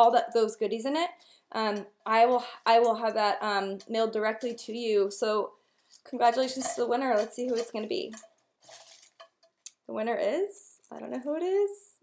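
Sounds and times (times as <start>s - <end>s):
paper slips rustling: 6.3s - 9.3s.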